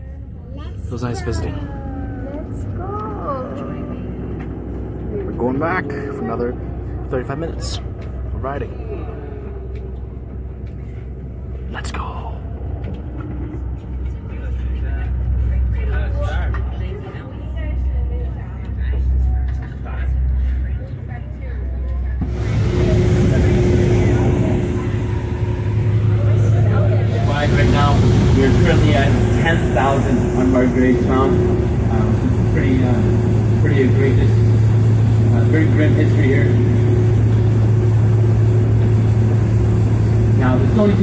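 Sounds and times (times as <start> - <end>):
indistinct voices: 0.0 - 20.3, 21.8 - 41.0
boat engine rumble: 0.0 - 41.0
rushing hiss with hum: 22.3 - 41.0.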